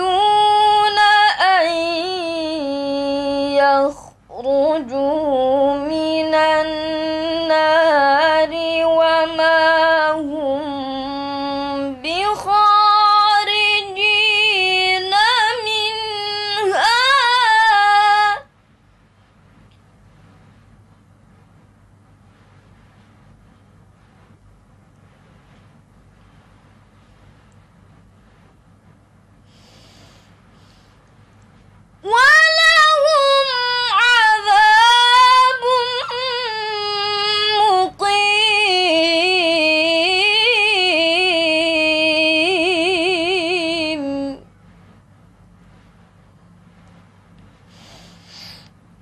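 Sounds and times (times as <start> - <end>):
short breath: 29.5 - 31.0, 47.6 - 48.8
girl reciting melodically: 32.0 - 38.9.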